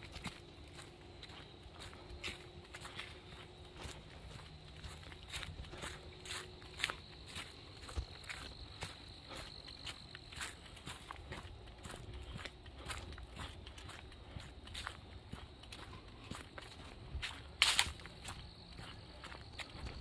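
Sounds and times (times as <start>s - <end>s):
footsteps on leafy dirt trail: 0.0s - 20.0s
high insect trill: 0.0s - 20.0s.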